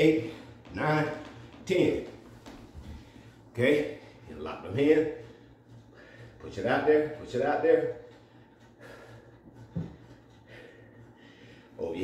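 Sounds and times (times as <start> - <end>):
man breathing quietly: 5.2 - 6.4, 8.2 - 11.8.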